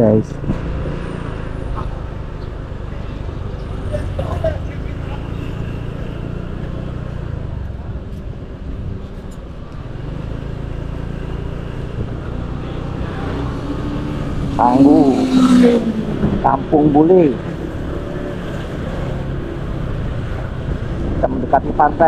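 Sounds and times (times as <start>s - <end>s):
road and wind noise: 0.0s - 22.0s.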